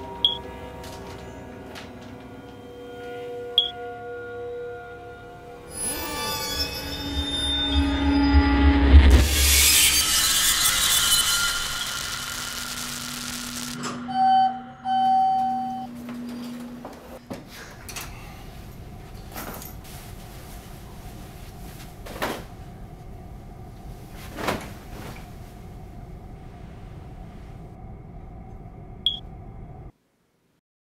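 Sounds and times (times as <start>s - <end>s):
low rumbling drone: 0.0s - 16.9s, 18.0s - 29.9s
low hum: 0.0s - 30.0s
high-pitched electronic beep: 11.5s - 15.9s.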